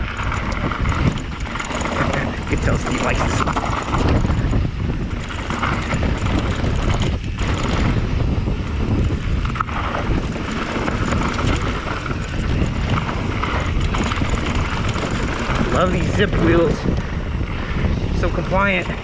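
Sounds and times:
bike clattering over bumps: 0.0s - 19.0s
bike tyres rolling on rocky trail: 0.0s - 19.0s
wind on microphone: 0.0s - 19.0s.

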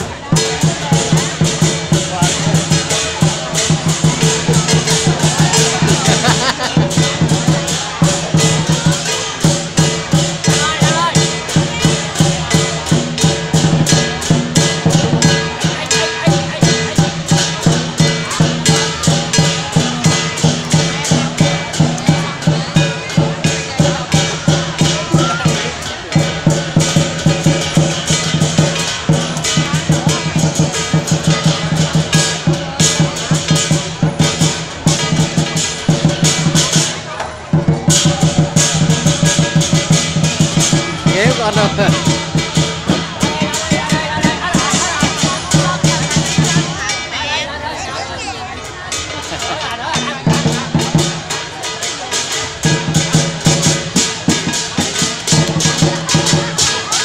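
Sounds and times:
big drum beating: 0.0s - 47.1s, 48.6s - 57.0s
cymbals clashing: 0.0s - 47.6s, 48.5s - 57.0s.

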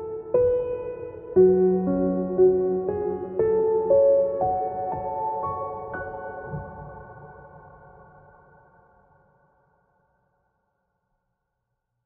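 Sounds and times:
soft piano music: 0.0s - 9.2s.

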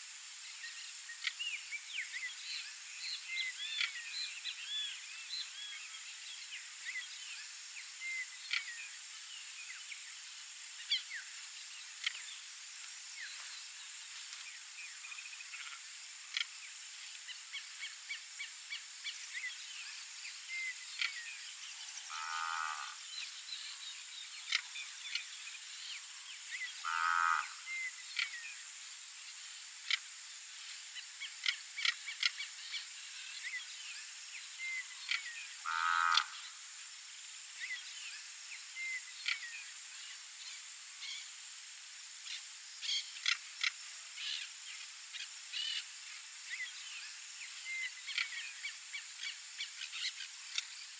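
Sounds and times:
steady high hiss: 0.0s - 50.9s
faint chirps and ticks: 0.4s - 50.9s.

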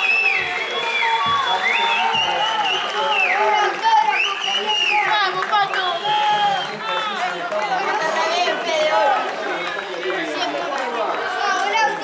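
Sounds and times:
voices talking and calling out: 0.0s - 12.0s.

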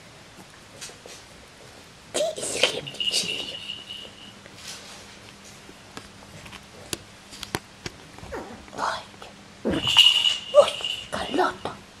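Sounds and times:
puppies growling and yipping: 8.2s - 8.7s.

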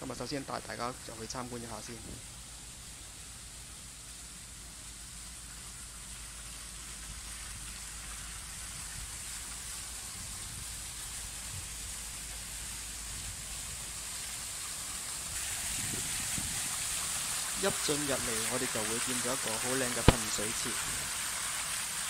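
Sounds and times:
fountain water splashing: 0.0s - 22.0s.

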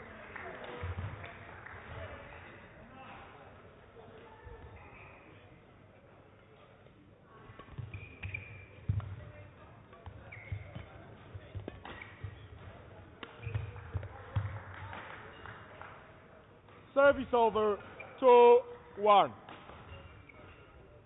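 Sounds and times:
shoe squeaks on court floor: 4.7s - 5.4s, 7.6s - 9.2s, 10.0s - 12.6s, 13.2s - 13.8s, 17.8s - 18.2s, 19.6s - 21.0s
racket hitting shuttlecock: 7.5s - 9.2s, 9.9s - 15.1s, 19.5s - 20.4s.

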